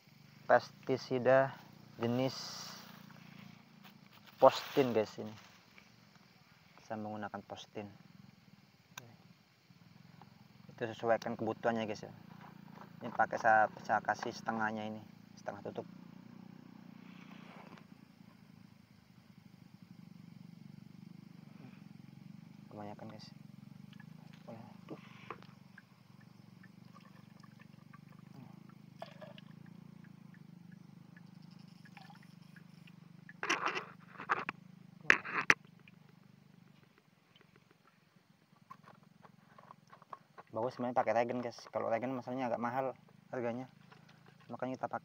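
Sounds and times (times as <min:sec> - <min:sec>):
liquid pouring into bucket: 0:26.6 - 0:28.4, 0:29.0 - 0:29.6, 0:31.7 - 0:32.4.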